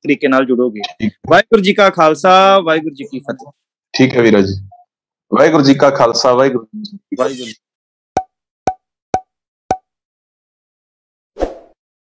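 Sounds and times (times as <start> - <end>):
short swish: 11.4 - 11.8.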